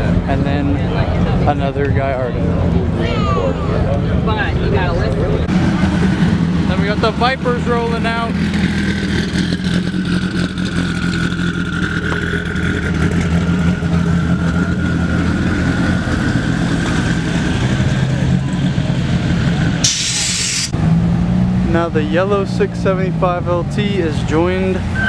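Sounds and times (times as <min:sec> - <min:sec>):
car engines droning: 0:00.0 - 0:25.0
brief loud hiss: 0:19.8 - 0:20.7.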